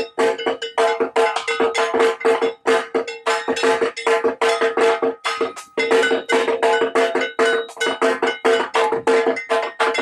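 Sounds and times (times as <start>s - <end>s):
rapid metallic percussion: 0.0s - 10.0s.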